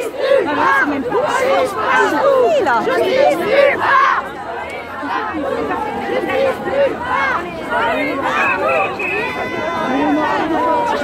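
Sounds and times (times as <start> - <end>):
crowd chanting: 0.0 - 11.0
crowd chattering and calling out: 0.0 - 11.0.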